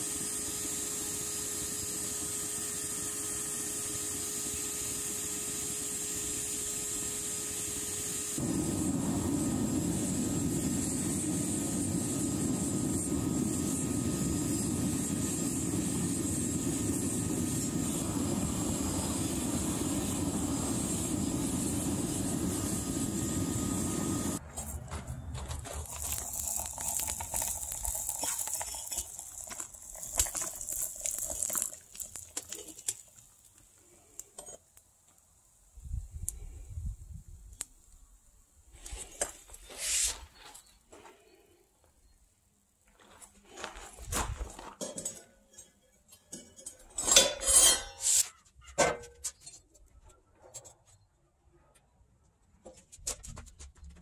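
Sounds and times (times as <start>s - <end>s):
furnace hissing rush: 0.0s - 24.5s, 25.8s - 34.2s
crackles and ticks: 25.5s - 35.3s, 37.5s - 38.0s.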